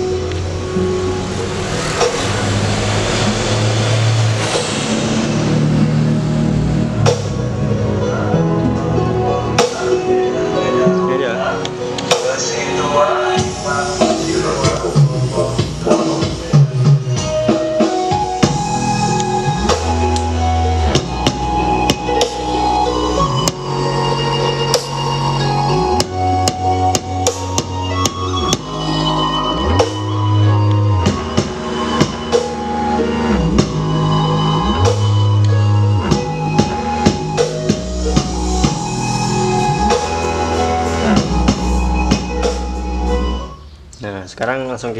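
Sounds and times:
music with drums and heavy bass: 0.0s - 43.7s.

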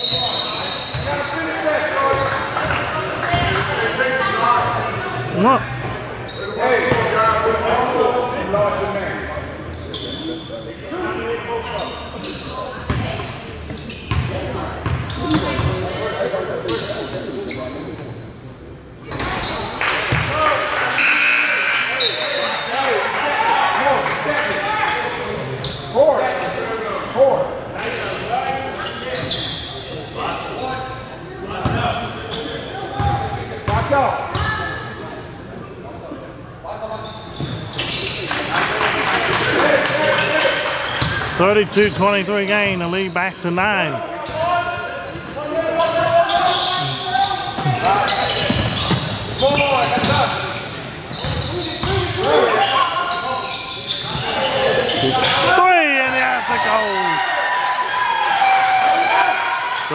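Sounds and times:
echoing voices: 41.2s - 44.6s.

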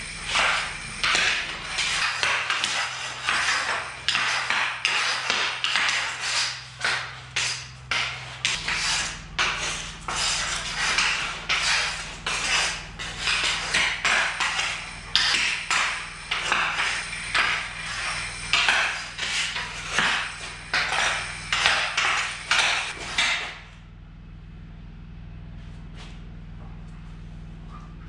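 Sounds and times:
hockey stick scraping on concrete: 0.0s - 23.6s.

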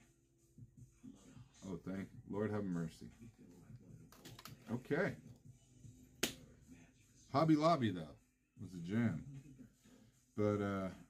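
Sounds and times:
sharp hand clap: 6.2s - 6.4s.

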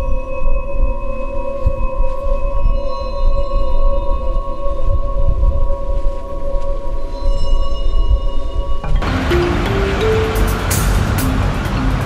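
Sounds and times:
dark droning music pad: 0.0s - 12.0s
low rumble: 8.6s - 12.0s.

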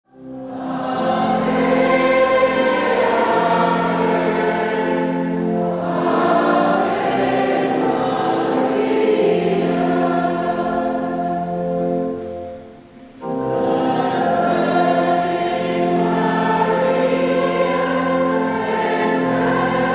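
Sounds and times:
choir singing a hymn: 0.1s - 19.9s.

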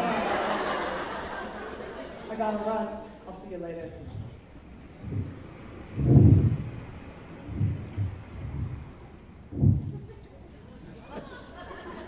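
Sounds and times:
dull thumps on stage floor: 5.0s - 6.8s, 7.5s - 8.9s, 9.5s - 10.1s.

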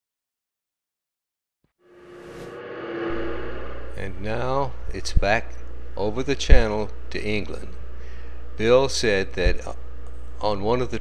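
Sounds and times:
deeper hum: 1.9s - 8.6s
steady hum with held tone: 1.9s - 11.0s.

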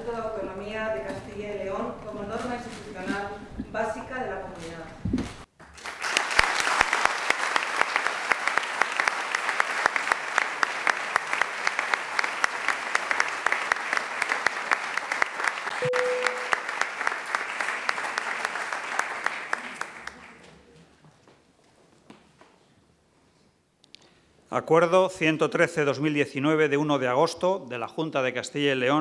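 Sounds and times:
audience applauding: 5.6s - 20.6s
short steady tone: 15.8s - 16.7s.

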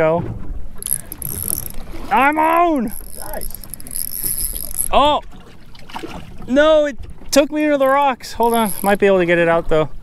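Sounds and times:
water: 0.0s - 10.0s
wind: 0.0s - 10.0s
fishing reel cranking: 0.8s - 5.0s, 7.8s - 9.0s.

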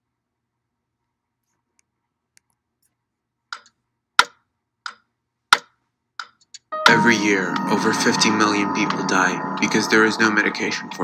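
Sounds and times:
clock ticking: 3.5s - 11.0s.

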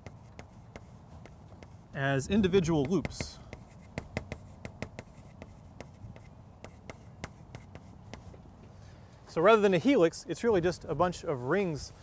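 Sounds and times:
chalk scratching on blackboard: 0.0s - 8.4s.

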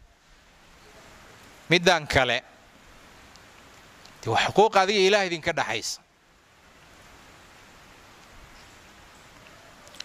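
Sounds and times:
room tone and microphone hiss: 0.0s - 10.0s.

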